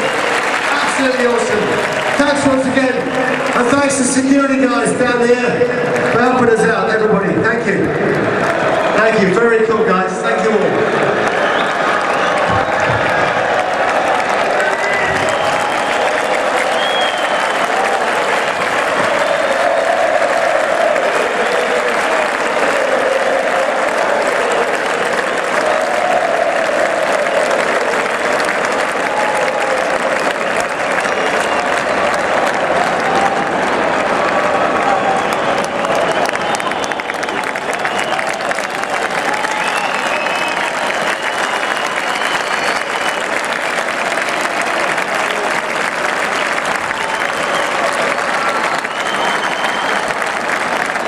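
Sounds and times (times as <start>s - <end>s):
stadium crowd applauding and cheering: 0.0s - 51.0s
crowd chanting: 10.8s - 30.2s.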